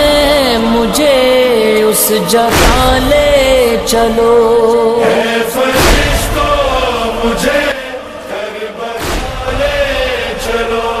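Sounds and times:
low thumps: 2.5 - 4.4, 5.8 - 7.5, 9.0 - 11.0.

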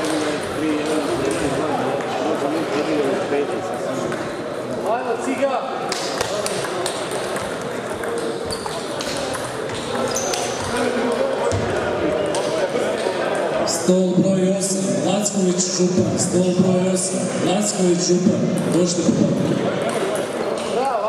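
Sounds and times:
table tennis balls clicking: 5.9 - 11.4, 18.6 - 20.8.

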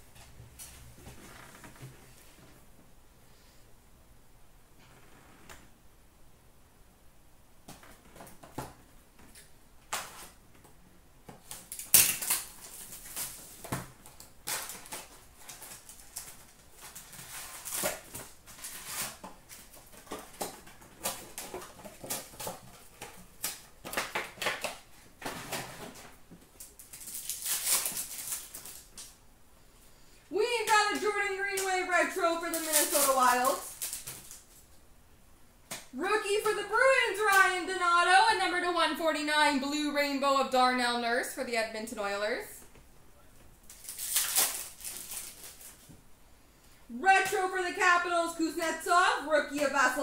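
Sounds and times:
card pack wrappers crinkling: 11.4 - 29.2, 30.6 - 34.7, 43.6 - 45.9.

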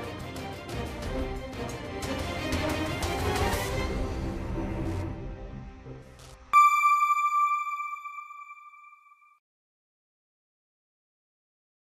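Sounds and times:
background music: 0.0 - 8.9
electronic bell-like ping: 6.6 - 9.4.

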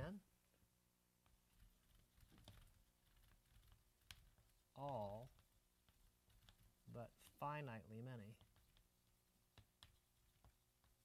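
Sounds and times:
chalk writing on a blackboard: 8.3 - 11.0.

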